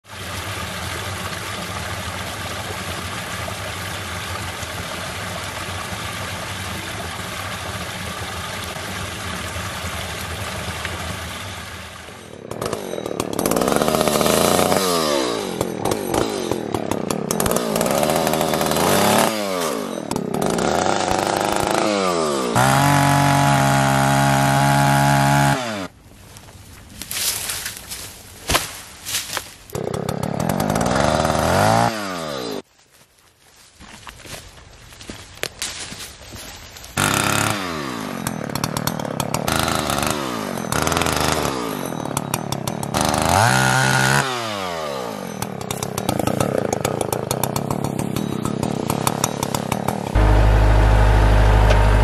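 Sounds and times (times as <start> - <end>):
chainsaw revving and cutting: 8.8 - 26.0, 29.7 - 32.7, 37.0 - 52.0
engine running steadily: 49.2 - 52.0.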